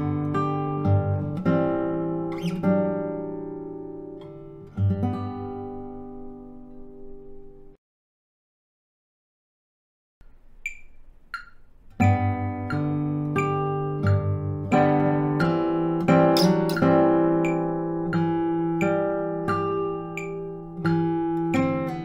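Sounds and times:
classical guitar fingerstyle: 0.0 - 7.7, 11.4 - 22.0.

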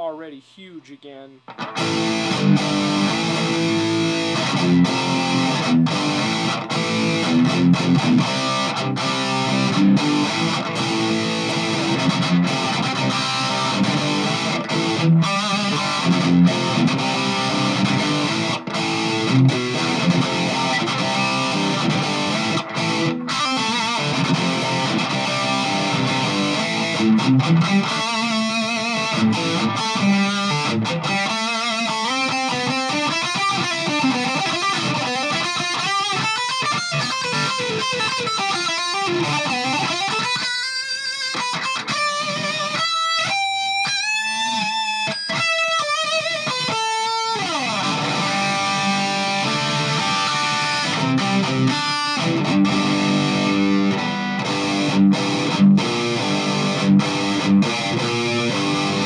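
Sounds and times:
distorted electric guitar riffs: 0.0 - 59.0.

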